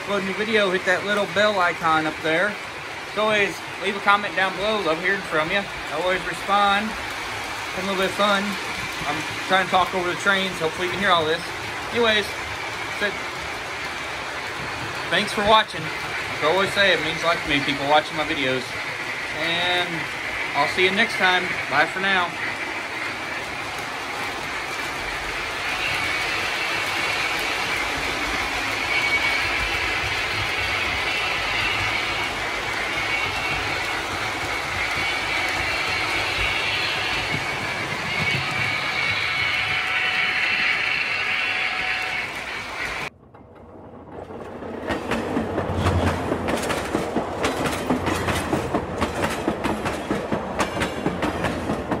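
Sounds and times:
clickety-clack of train wheels: 0:00.0 - 0:52.0.

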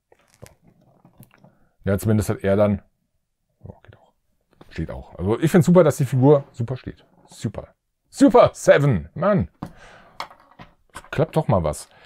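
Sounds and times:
faint plastic rustling and clicks: 0:00.0 - 0:01.8.

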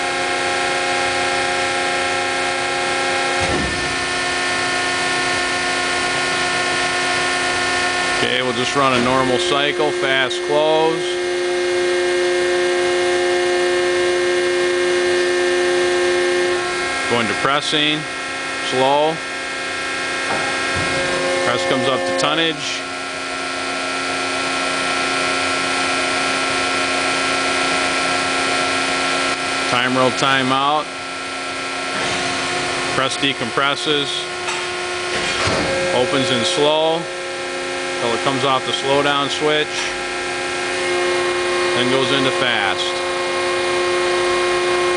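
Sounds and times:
hydraulic press pump whining: 0:00.0 - 0:44.9.

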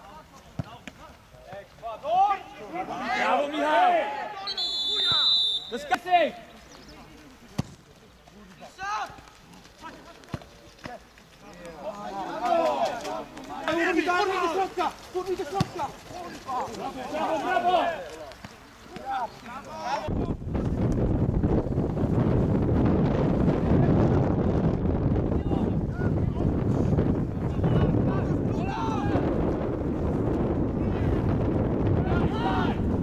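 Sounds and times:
players shouting: 0:00.1 - 0:06.5, 0:11.5 - 0:20.3, 0:27.4 - 0:29.6, 0:30.7 - 0:33.0
football kicked: 0:07.5 - 0:07.8, 0:15.5 - 0:15.9
wind buffeting microphone: 0:20.0 - 0:33.0.

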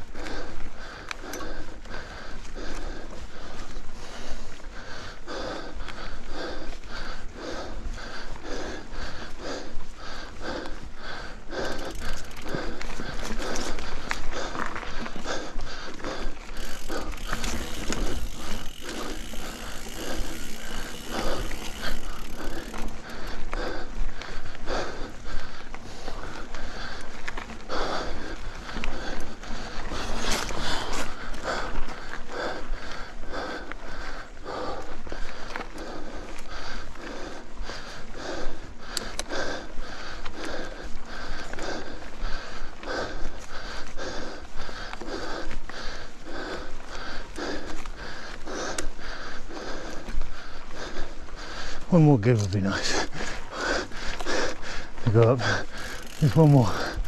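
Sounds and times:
person breathing hard: 0:00.0 - 0:57.0
bike rattling over dirt: 0:07.7 - 0:38.8, 0:49.8 - 0:57.0.

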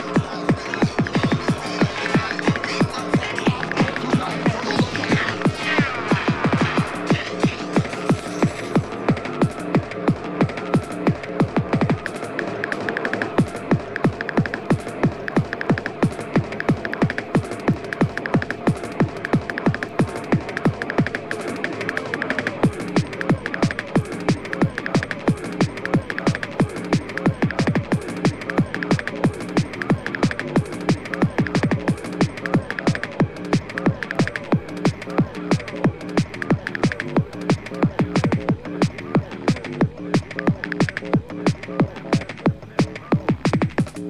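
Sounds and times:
fast techno dance music: 0:00.0 - 0:44.0
high ticking percussion: 0:00.0 - 0:44.0
steady droning tone: 0:01.4 - 0:42.8
pounding kick drum: 0:03.6 - 0:21.8, 0:22.5 - 0:44.0.

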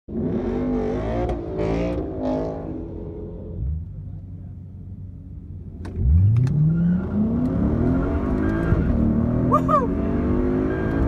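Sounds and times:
car engine revving: 0:00.1 - 0:03.7, 0:05.8 - 0:11.0.

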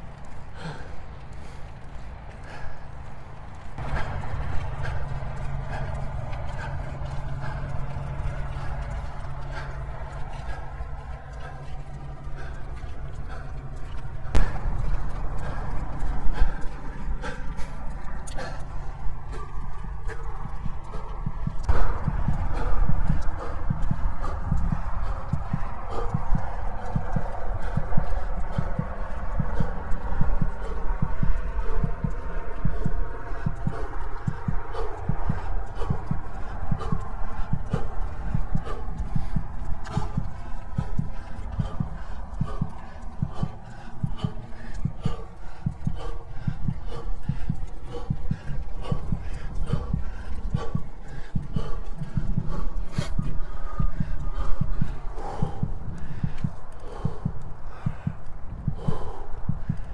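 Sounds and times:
person breathing heavily: 0:00.0 - 0:59.9
wind rumble on microphone: 0:00.0 - 0:59.9.

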